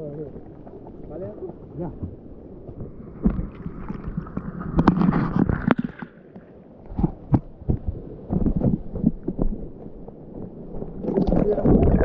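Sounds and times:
water sloshing against camera: 0:00.0 - 0:12.0.

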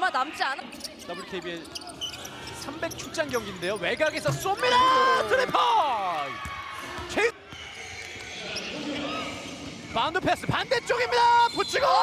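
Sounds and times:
faint shoe squeaks: 0:00.6 - 0:04.8.

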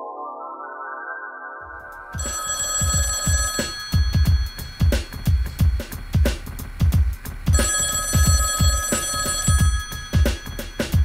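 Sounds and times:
telephone ringing: 0:02.1 - 0:06.2, 0:07.5 - 0:11.0
background music with drum beat: 0:02.1 - 0:11.0.

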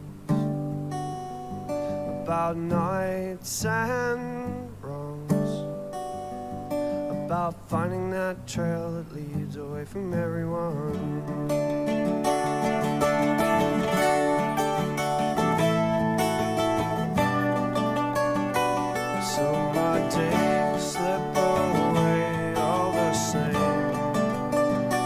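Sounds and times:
strummed acoustic guitar: 0:00.0 - 0:25.0
mandolin playing: 0:11.4 - 0:25.0.

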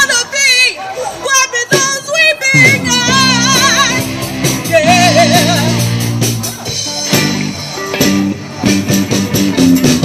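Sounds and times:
drums: 0:00.0 - 0:10.0
electric guitars: 0:02.6 - 0:10.0.

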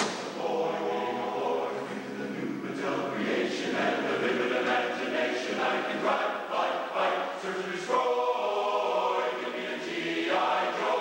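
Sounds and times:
male chorus singing a cappella: 0:00.2 - 0:11.0.

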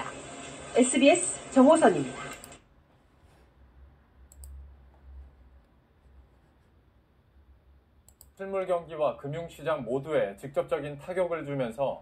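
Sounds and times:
computer mouse clicks: 0:04.3 - 0:04.6, 0:08.0 - 0:08.4.

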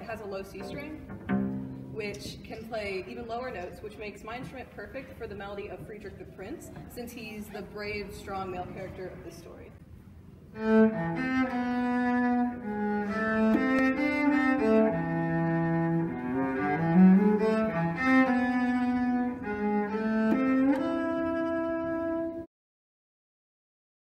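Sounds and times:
solo cello playing: 0:00.6 - 0:02.1, 0:10.5 - 0:22.5.

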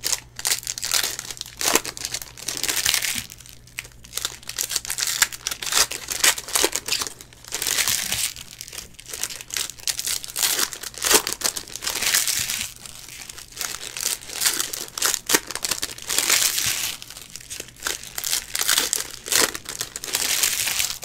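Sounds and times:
foil wrapper crinkling: 0:00.0 - 0:21.0.

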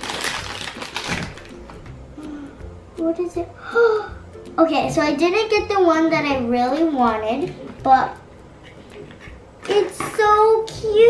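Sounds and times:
plastic packet crinkling: 0:00.0 - 0:01.8.

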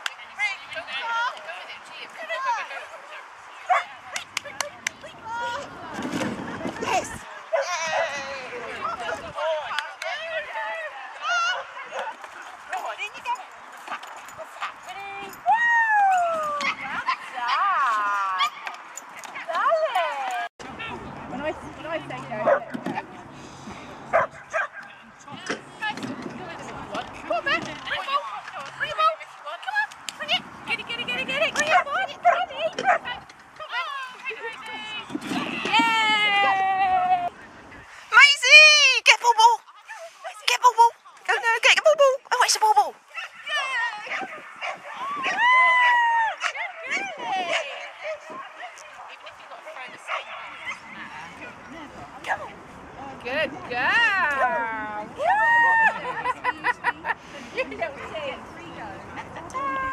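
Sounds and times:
murmur of voices: 0:00.0 - 0:59.9
dog barking: 0:03.7 - 0:03.9, 0:24.1 - 0:24.8, 0:31.7 - 0:33.1.

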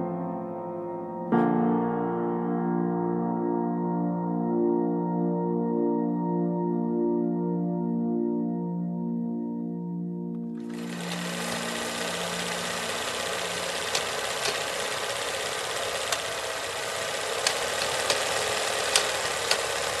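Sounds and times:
soft music: 0:00.0 - 0:15.9
film projector clatter: 0:10.6 - 0:20.0.

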